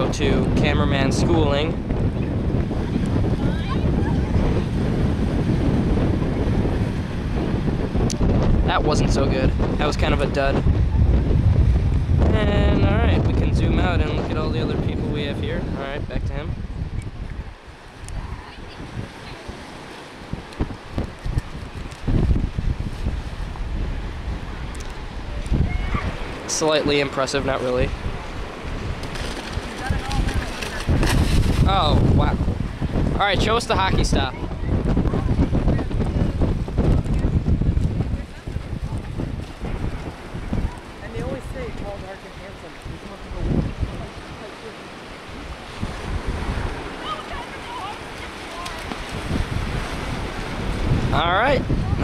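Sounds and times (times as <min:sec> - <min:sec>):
wind buffeting microphone: 0:00.0 - 0:52.0
small waves breaking on beach: 0:17.2 - 0:52.0.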